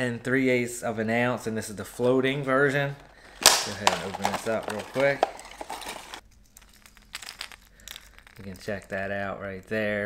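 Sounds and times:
plastic packaging crinkling: 3.3 - 9.0.

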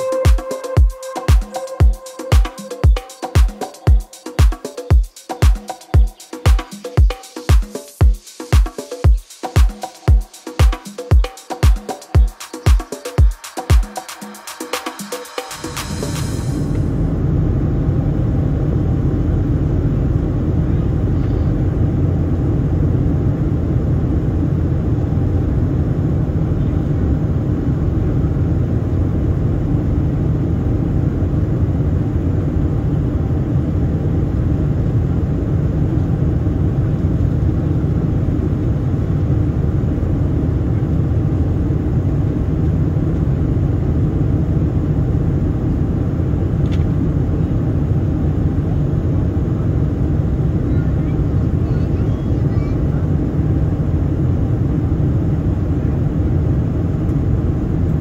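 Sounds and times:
airplane cabin rumble: 16.2 - 58.0
faint click: 46.6 - 46.9.

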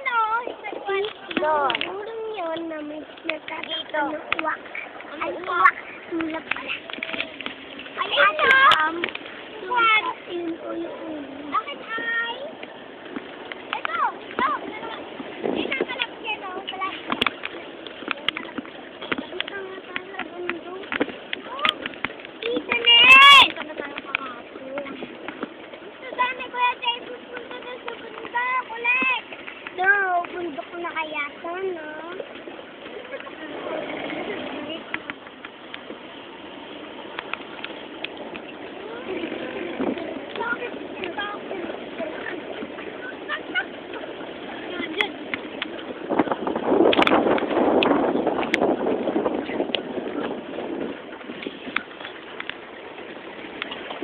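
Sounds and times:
faint voices: 0.0 - 54.0
vehicle running: 29.2 - 54.0.

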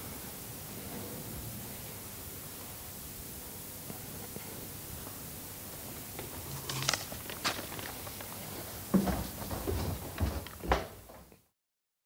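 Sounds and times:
faint room noise: 0.0 - 11.5.

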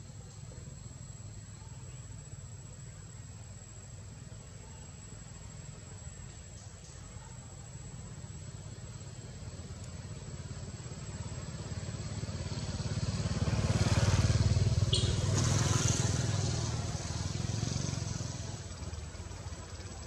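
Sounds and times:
vehicle engine rumble passing: 7.7 - 20.0.

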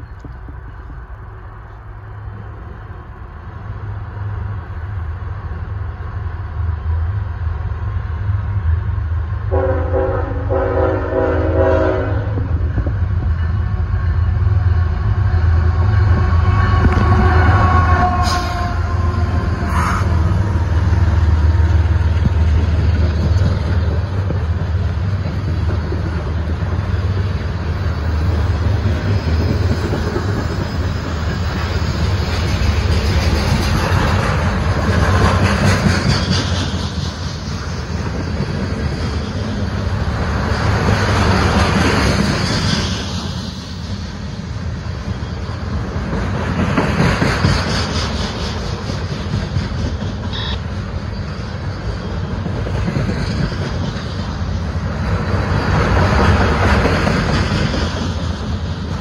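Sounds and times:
diesel locomotive rumble: 0.0 - 59.0
train horn blast: 9.5 - 12.5, 16.2 - 20.1, 50.3 - 50.7.

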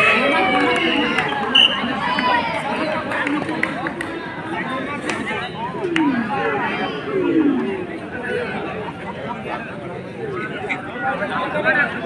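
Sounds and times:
crowd chattering and shouting: 0.0 - 12.0.

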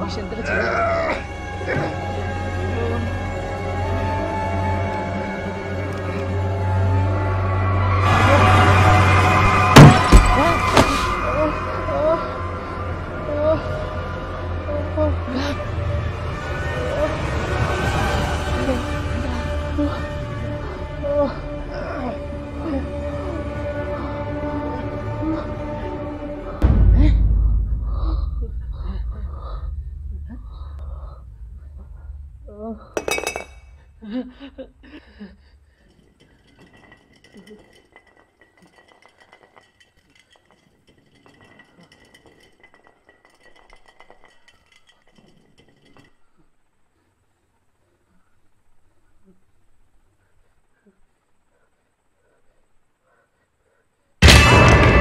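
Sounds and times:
bottle rolling on floor: 9.4 - 11.2, 33.0 - 33.8, 35.8 - 46.7
glass bottle hitting floor: 9.8 - 11.1, 33.0 - 33.8
tense music drone: 11.2 - 33.0.

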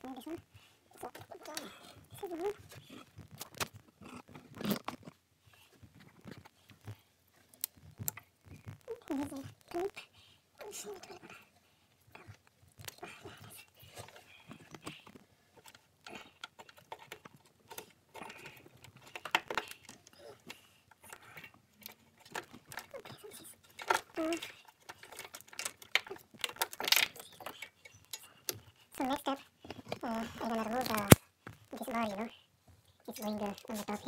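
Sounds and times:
plastic connectors clicking and rattling: 13.9 - 28.7.

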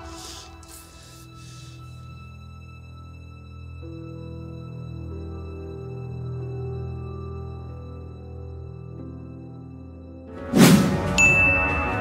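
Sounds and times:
dark background score: 0.0 - 12.0
whoosh: 10.4 - 11.3.

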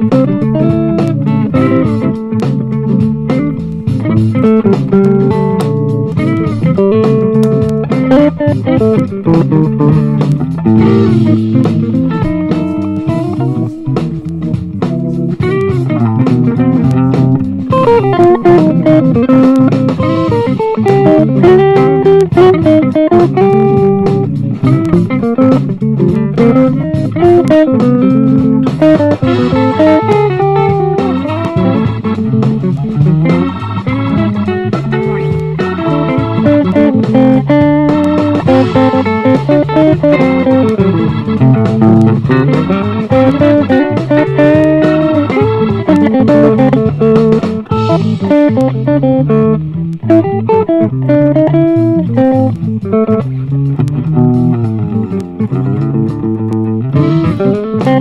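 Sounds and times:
electric guitar playing funk: 0.0 - 58.0.

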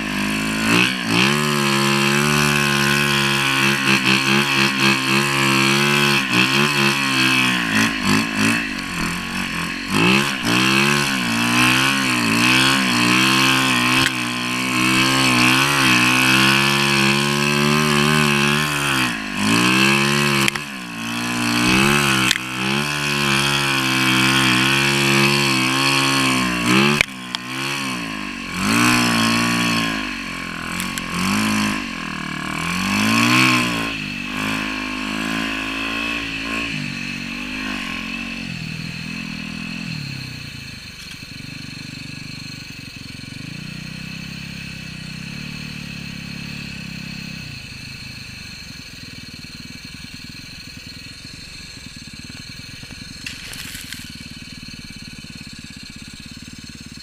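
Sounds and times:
motorbike engine revving: 0.0 - 57.0.

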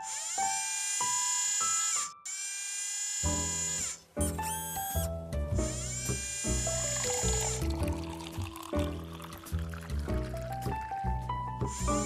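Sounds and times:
electric motors whining: 0.0 - 5.1, 5.8 - 7.7
background music: 3.3 - 12.0.

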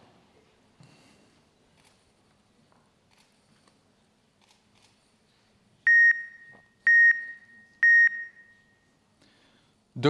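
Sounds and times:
short electronic beeps: 5.9 - 8.8.

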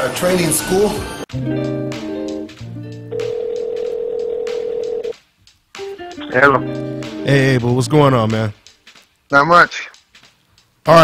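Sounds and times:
plucked guitar music: 1.3 - 3.4, 5.8 - 8.4
telephone ringback tone: 3.1 - 5.1.

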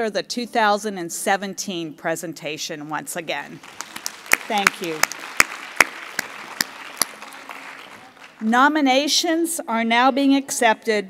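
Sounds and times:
audience applause: 3.6 - 8.4
close hand claps: 3.6 - 8.5.

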